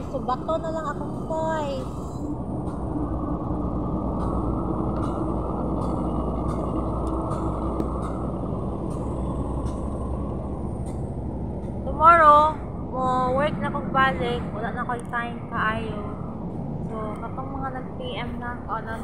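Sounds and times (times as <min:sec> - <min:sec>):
vehicle engine idling: 0:00.0 - 0:13.5.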